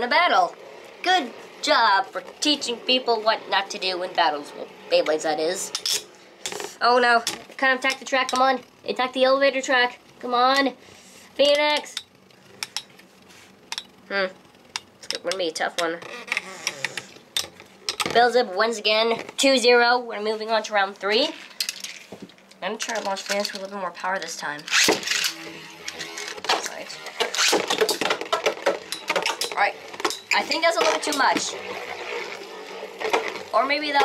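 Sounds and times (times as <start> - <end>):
spinning tops whirring: 0.0 - 10.8, 22.8 - 34.0.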